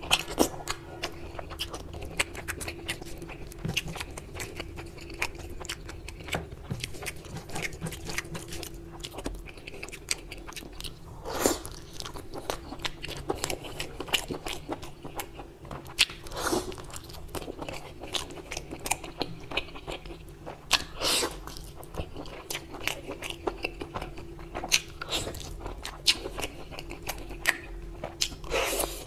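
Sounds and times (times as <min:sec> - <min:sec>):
wet chewing and mouth smacking: 0:00.0 - 0:29.0.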